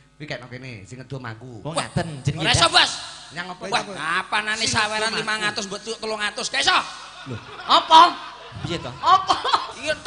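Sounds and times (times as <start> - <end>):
man speaking: 0.2 - 10.0
man laughing into microphone: 6.7 - 10.0.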